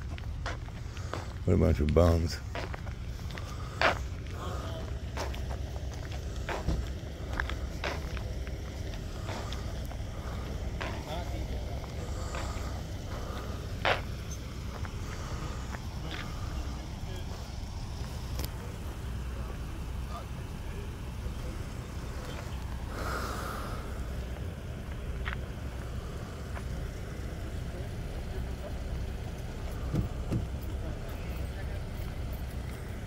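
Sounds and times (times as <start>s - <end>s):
footsteps: 0.0s - 19.0s, 21.3s - 27.5s, 28.6s - 33.0s
faint voices: 0.0s - 33.0s
steady low rumble: 0.0s - 33.0s.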